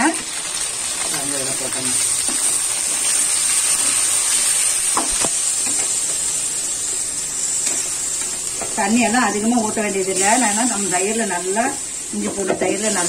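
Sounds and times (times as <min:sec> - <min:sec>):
chicken sizzling in hot oil: 0:00.0 - 0:13.0.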